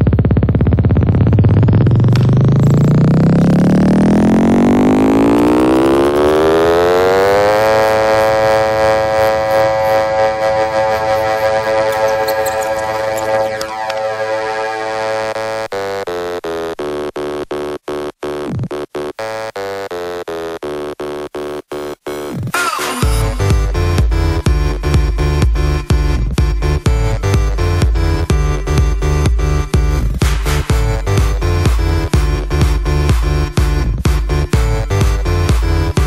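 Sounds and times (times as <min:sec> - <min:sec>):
electronic dance music: 0:07.4 - 0:15.4, 0:22.6 - 0:26.0, 0:26.8 - 0:36.0.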